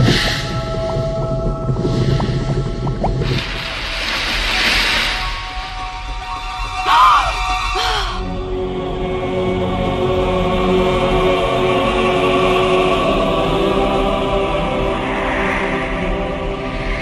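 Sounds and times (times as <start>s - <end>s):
dramatic orchestral film score: 0.0s - 17.0s.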